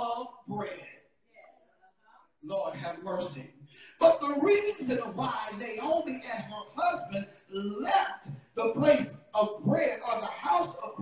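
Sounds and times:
man preaching into a microphone: 0.0s - 1.0s, 2.4s - 11.0s.

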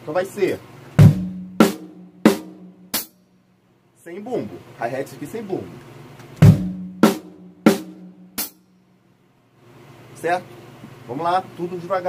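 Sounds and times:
drum kit hits: 1.0s - 3.1s, 6.4s - 8.6s.

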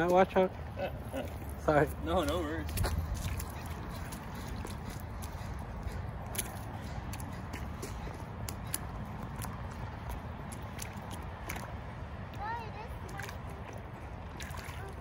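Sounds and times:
rain boots splashing in puddle: 1.2s - 15.0s.

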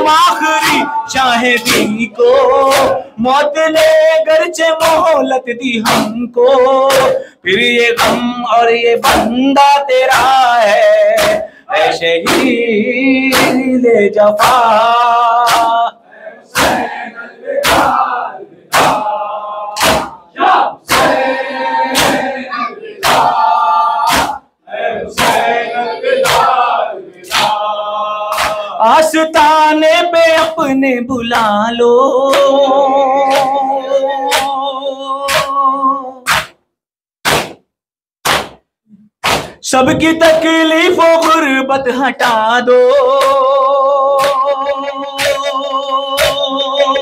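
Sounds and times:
people slapping their chests: 0.0s - 31.5s, 32.1s - 36.6s, 37.2s - 47.0s
crowd of voices calling out: 16.1s - 28.8s.

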